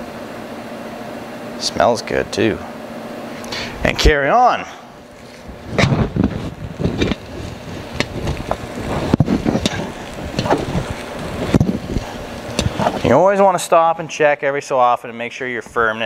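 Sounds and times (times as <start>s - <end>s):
sausage stuffer rumbling: 1.1s - 14.1s.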